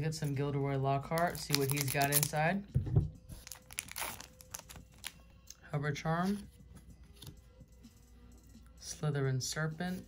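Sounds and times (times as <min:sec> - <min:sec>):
foil wrapper crinkling: 0:01.2 - 0:02.4, 0:03.4 - 0:05.2.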